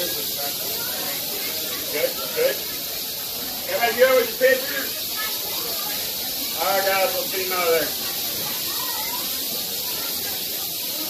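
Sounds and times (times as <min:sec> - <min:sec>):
rattlesnakes rattling: 0:00.0 - 0:11.0.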